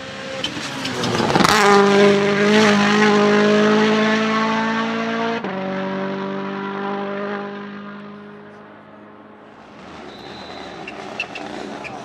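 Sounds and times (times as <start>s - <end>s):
rally car engine at high revs: 0.0s - 12.0s.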